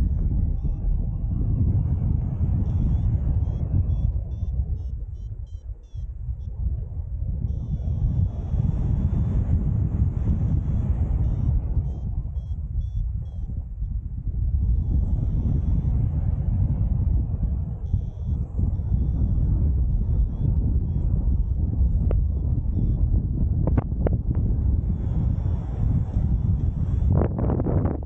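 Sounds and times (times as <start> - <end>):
variometer beeps: 0.0 - 6.6, 7.4 - 27.1
wind buffeting microphone: 0.0 - 28.0.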